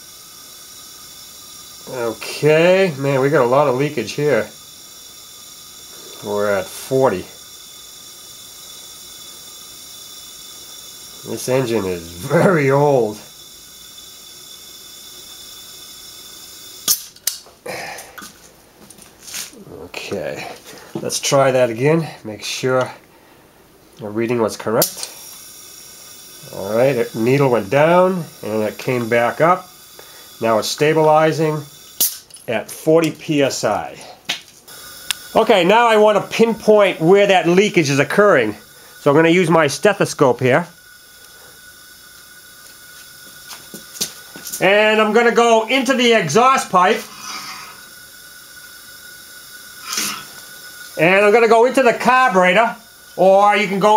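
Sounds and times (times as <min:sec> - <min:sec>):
compressed air hissing: 0:00.0 - 0:53.9
air hose coupling snapping: 0:16.8 - 0:18.4, 0:32.0 - 0:33.2, 0:49.8 - 0:51.0.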